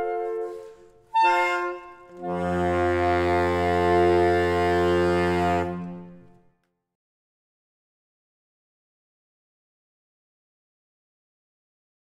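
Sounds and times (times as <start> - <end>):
low baritone saxophone note: 0.0 - 6.4
saxophone quartet chord: 0.0 - 6.4.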